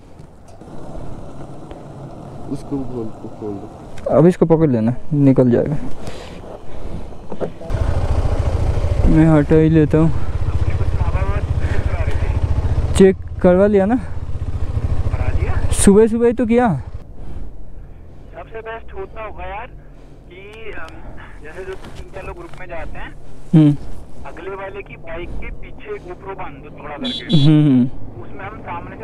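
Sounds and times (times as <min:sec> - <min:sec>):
motorcycle engine rumbling: 0:00.0 - 0:29.0
person speaking: 0:20.3 - 0:29.0.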